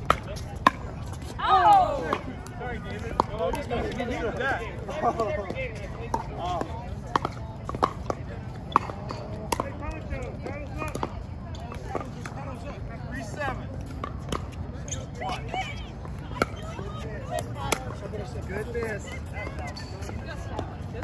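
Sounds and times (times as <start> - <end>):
players talking: 0.0 - 21.0.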